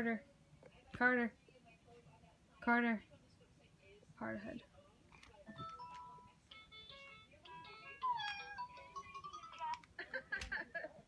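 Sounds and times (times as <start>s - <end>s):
toy beeping electronic tune: 5.7s - 9.8s.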